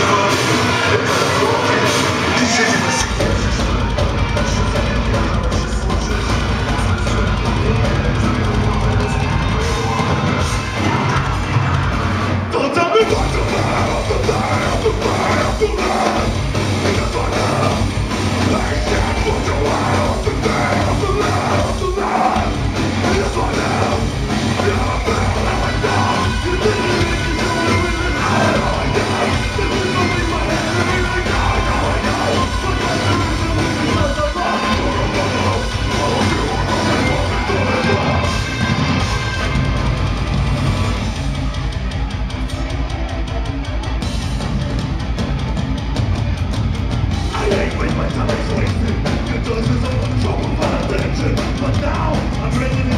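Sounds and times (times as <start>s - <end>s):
shouted vocals: 0.0s - 39.8s
distorted electric guitars: 0.0s - 52.9s
heavy bass and kick drum: 0.0s - 52.9s
live metal band playing: 0.0s - 52.9s.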